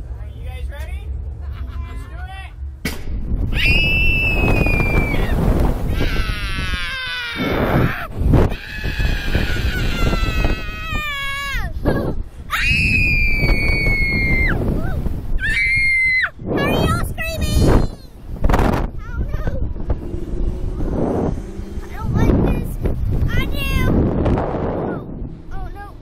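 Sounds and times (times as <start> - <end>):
wind rushing over microphone: 2.5 - 26.0
girls screaming: 3.5 - 11.7, 12.5 - 14.6, 15.4 - 16.4.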